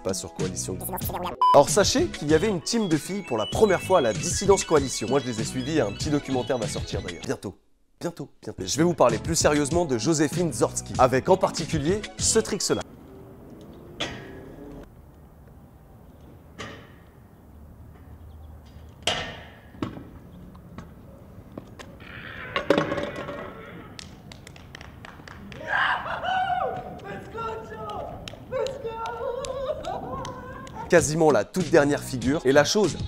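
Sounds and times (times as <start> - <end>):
scooter clattering against metal rail: 14.0 - 14.6, 18.7 - 20.1
onlookers shouting and cheering: 25.5 - 30.9.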